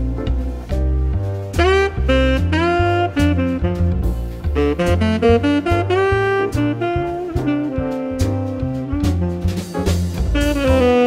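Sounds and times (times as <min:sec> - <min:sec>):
bass notes: 0:00.0 - 0:11.0
latin jazz lead melody: 0:00.0 - 0:11.0.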